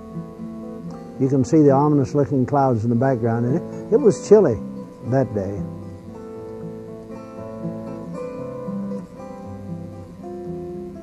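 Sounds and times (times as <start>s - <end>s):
acoustic guitar strumming chords: 0.0s - 11.0s.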